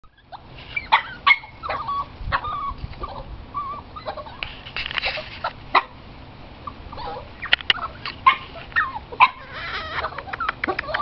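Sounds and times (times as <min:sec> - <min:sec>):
animal yips or squawks: 0:06.7 - 0:11.0.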